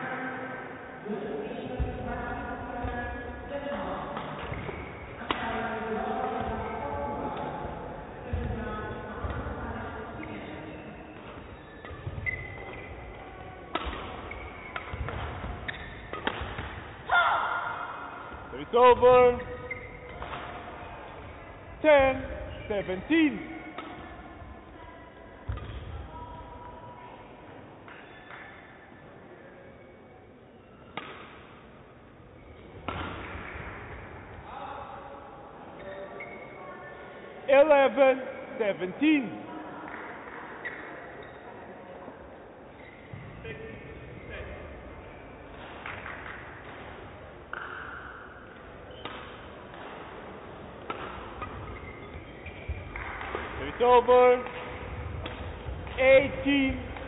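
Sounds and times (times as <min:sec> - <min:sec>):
racket hitting shuttlecock: 0:04.1 - 0:05.6, 0:10.2 - 0:18.4, 0:19.3 - 0:21.3, 0:23.6 - 0:24.3, 0:25.4 - 0:25.9, 0:30.9 - 0:31.6, 0:32.6 - 0:34.4, 0:45.5 - 0:53.6, 0:54.4 - 0:56.0
shoes squeaking on court floor: 0:04.2 - 0:05.3, 0:08.2 - 0:17.0, 0:18.3 - 0:24.5, 0:27.8 - 0:29.1, 0:35.7 - 0:37.2, 0:40.5 - 0:41.7, 0:42.7 - 0:46.8, 0:47.5 - 0:57.0
shuttlecock struck by rackets: 0:13.7 - 0:16.9, 0:30.9 - 0:31.5, 0:32.8 - 0:33.8
loud shout: 0:17.1 - 0:18.0.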